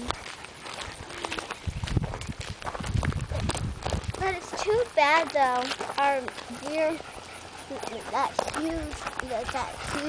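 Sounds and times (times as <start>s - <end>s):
footsteps crunching on gravel: 0.0s - 10.0s
low rumble on microphone: 1.0s - 4.5s.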